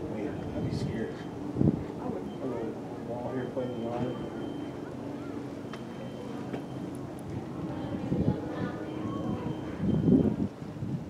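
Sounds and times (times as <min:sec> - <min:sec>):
faint distant voices: 0:00.0 - 0:10.6.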